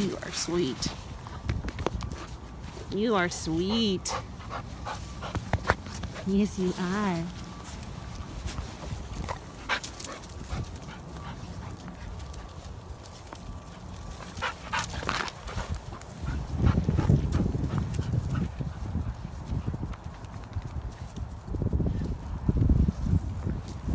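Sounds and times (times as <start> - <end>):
footsteps on dry leaves: 0.0 - 23.9.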